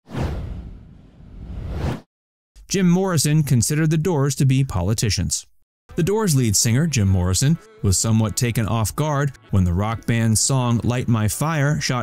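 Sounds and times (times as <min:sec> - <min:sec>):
whoosh sound effect: 0:00.1 - 0:02.1.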